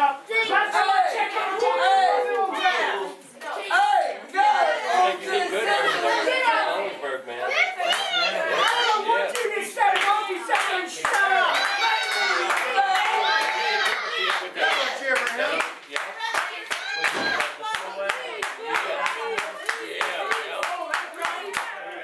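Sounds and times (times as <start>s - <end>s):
voices talking and calling out: 0.0s - 22.0s
audience clapping in rhythm: 7.8s - 22.0s.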